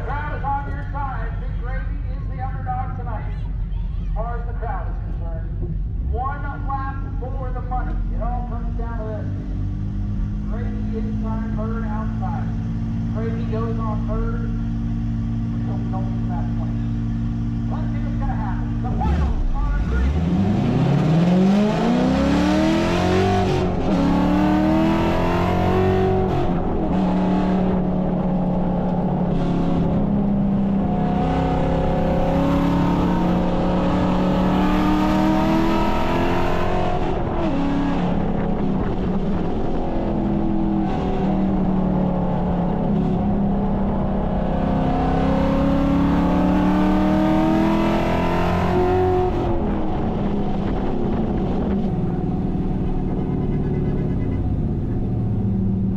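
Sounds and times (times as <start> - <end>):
car engine accelerating: 4.6 - 55.9.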